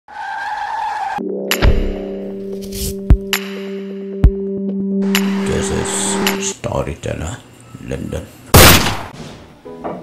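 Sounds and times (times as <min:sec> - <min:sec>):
car tyres screeching: 0:00.1 - 0:01.2
music with sharp hit and boom: 0:01.4 - 0:02.3.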